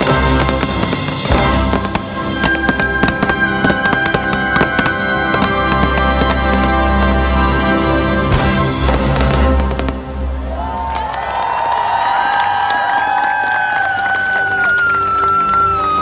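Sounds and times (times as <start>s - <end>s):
fireworks crackling and banging: 0.0s - 10.5s
orchestral music over loudspeakers: 0.0s - 10.9s, 14.2s - 16.0s.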